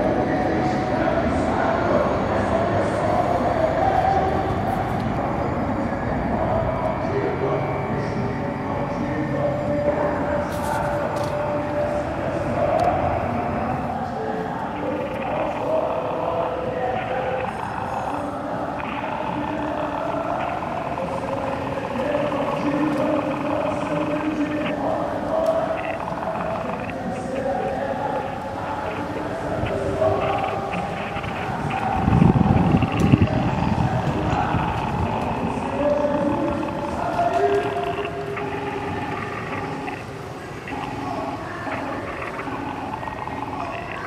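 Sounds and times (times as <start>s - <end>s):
people talking: 0.0s - 44.0s.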